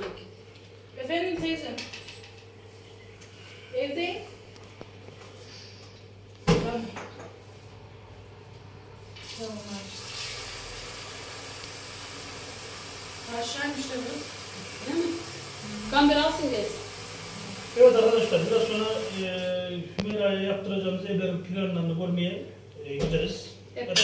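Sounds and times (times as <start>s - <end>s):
tap water running into sink: 9.2s - 19.2s.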